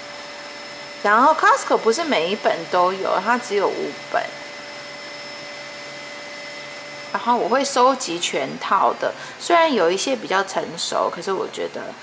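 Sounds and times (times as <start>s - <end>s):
thin whining tones: 0.0s - 12.0s.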